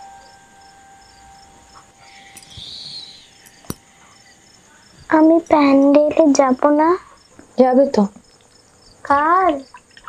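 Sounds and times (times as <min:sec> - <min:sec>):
high-pitched chirping: 0:00.0 - 0:06.0
girl asking a question: 0:05.1 - 0:08.2.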